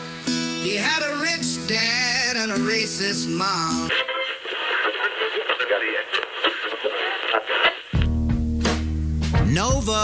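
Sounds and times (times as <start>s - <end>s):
full-range music: 0.0s - 10.0s
thin radio-like rap music: 0.6s - 8.1s, 9.4s - 10.0s.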